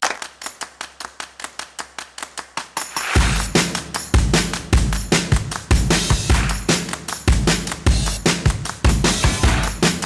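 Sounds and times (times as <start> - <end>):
rapid rhythmic clicks: 0.0 - 10.0.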